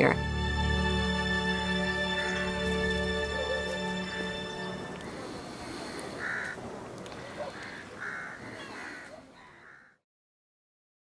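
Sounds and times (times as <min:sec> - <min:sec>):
outdoor ambience hiss: 0:00.0 - 0:09.7
crows cawing: 0:03.1 - 0:10.0.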